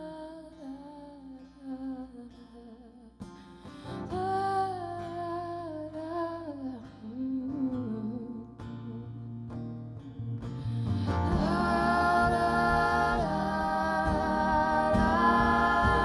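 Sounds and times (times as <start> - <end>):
woman singing wordless vocal: 0.0 - 9.2, 10.9 - 16.0
acoustic guitar strumming: 6.9 - 16.0.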